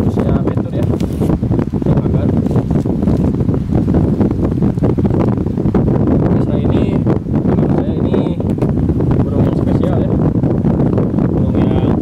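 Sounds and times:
wind blowing on microphone: 0.0s - 12.0s.

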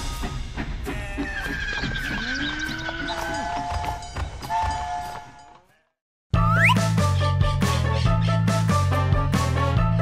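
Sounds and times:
cartoon train horn blasts: 3.8s - 5.5s.

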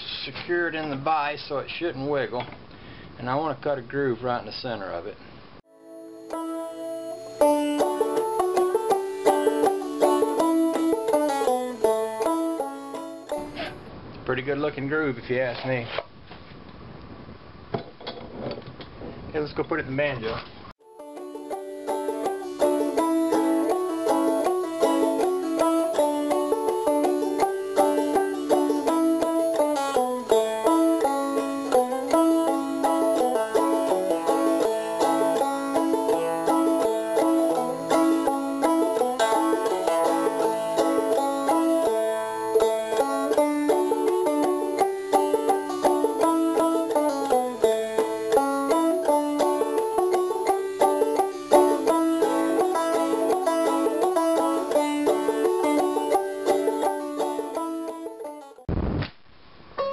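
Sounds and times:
banjo picking: 5.7s - 13.9s, 20.8s - 58.7s.

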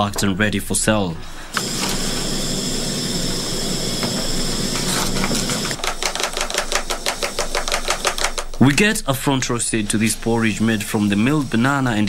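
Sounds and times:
mechanical hum with high whine: 0.0s - 12.0s
spoon stirring in plastic mug: 5.7s - 8.7s.

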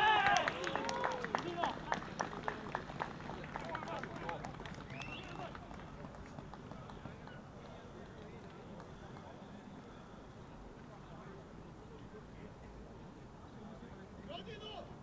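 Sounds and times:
men shouting in celebration: 0.0s - 1.2s.

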